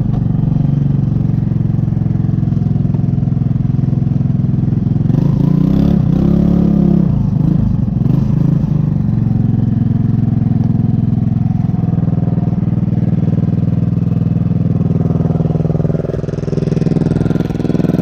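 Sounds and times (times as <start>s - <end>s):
moped engine idling: 0.0s - 5.5s, 7.2s - 18.0s.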